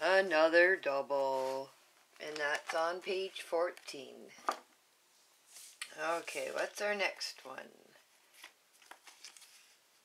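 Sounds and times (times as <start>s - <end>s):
faint papery rustles and clicks: 8.2s - 9.9s.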